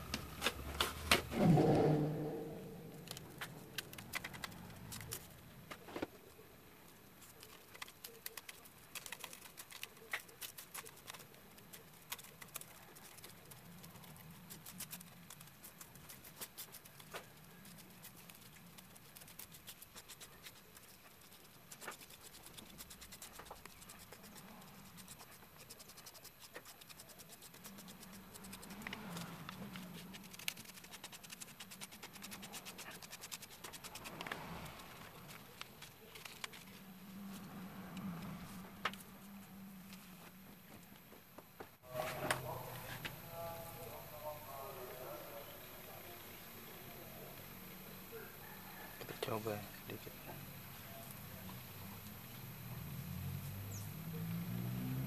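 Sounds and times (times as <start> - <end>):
plastic spoon scraping powder on paper: 7.2 - 37.4.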